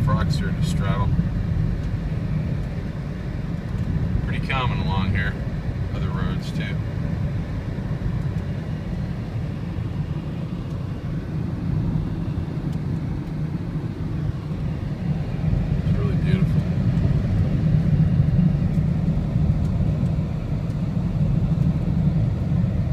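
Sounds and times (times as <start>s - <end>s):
car engine: 0.0s - 22.9s
tyres rumbling on wet road: 0.0s - 22.9s.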